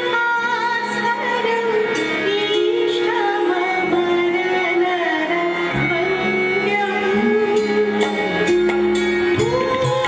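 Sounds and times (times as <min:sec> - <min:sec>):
instrumental accompaniment: 0:00.0 - 0:10.0
woman singing devotional song: 0:00.0 - 0:10.0.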